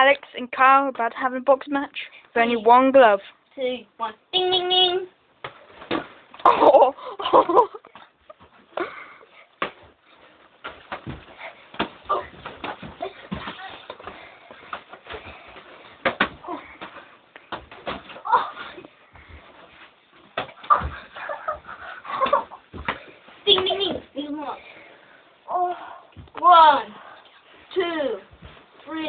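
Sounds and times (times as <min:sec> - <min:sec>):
thumps and knocks of scuffling: 0:09.4 - 0:24.1, 0:27.9 - 0:29.0.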